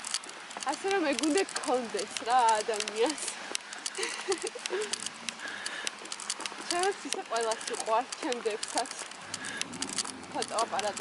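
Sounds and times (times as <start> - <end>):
sharp clicks and taps: 0.0 - 11.0
woman's voice: 0.6 - 4.9, 6.6 - 9.1, 10.3 - 11.0.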